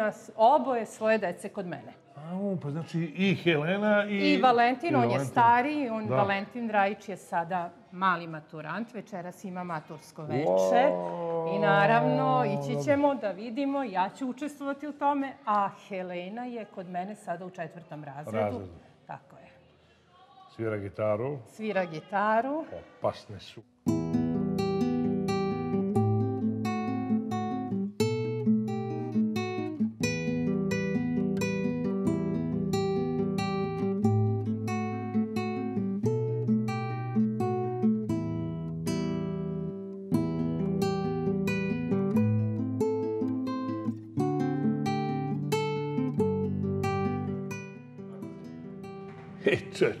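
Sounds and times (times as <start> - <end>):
classical guitar fingerstyle: 10.3 - 13.3, 23.8 - 50.0.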